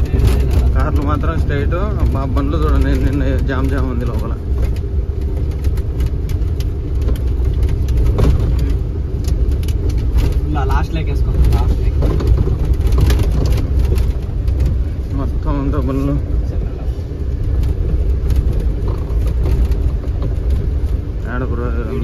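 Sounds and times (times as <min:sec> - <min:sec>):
cab rattles and knocks: 0:00.0 - 0:22.0
truck engine rumbling: 0:00.0 - 0:22.0.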